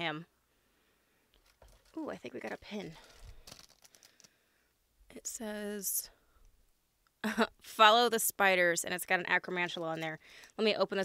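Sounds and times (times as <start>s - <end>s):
packaging crinkling and rustling: 1.3s - 4.4s.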